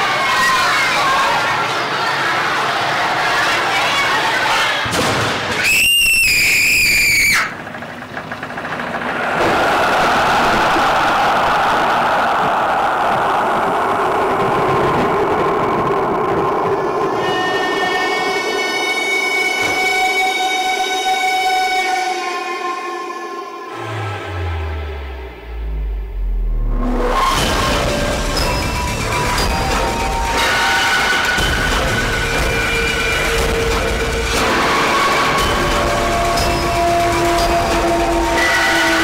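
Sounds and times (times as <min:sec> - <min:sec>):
shrill wavering whistle-like tone: 0:05.6 - 0:07.6
steady rumbling roar: 0:07.5 - 0:18.8, 0:23.6 - 0:39.0.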